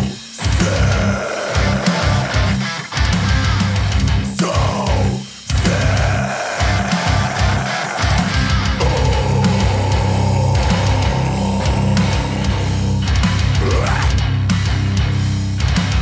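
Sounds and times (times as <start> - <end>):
electric guitar long notes: 0.0 - 16.0
pop-punk band playing: 0.0 - 16.0.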